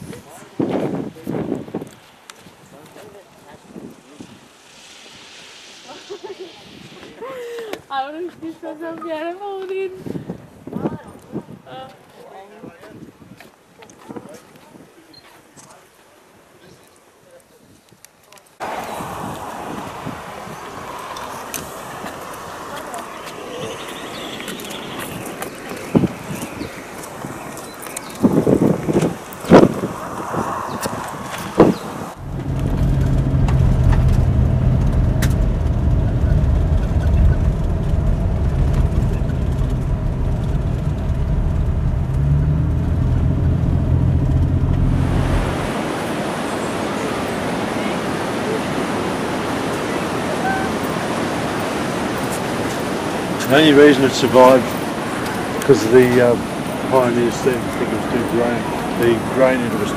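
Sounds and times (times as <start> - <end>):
outdoor background noise: 0.0 - 59.9
car engine and road noise: 2.1 - 8.2, 18.6 - 46.8
steady hiss: 2.1 - 9.0.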